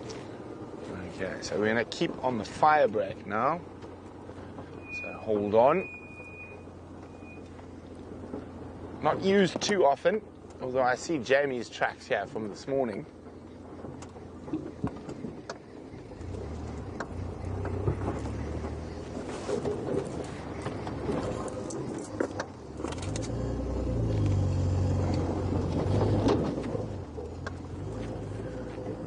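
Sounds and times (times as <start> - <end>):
vehicle engine rumbling: 0.0 - 29.0
knocks of vehicle on rough track: 6.9 - 29.0.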